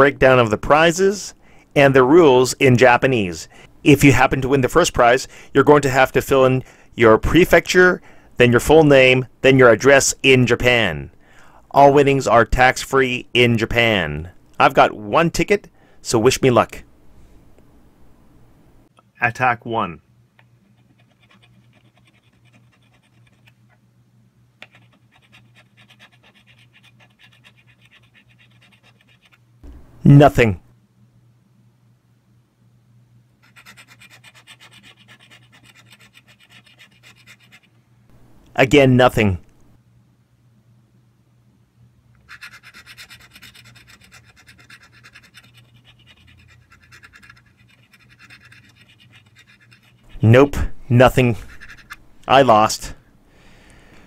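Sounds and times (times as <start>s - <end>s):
low steady hum: 0.0s - 54.0s
coin scratching lottery ticket: 20.7s - 23.6s, 24.6s - 29.4s, 33.4s - 37.7s, 42.3s - 50.3s, 51.3s - 52.0s.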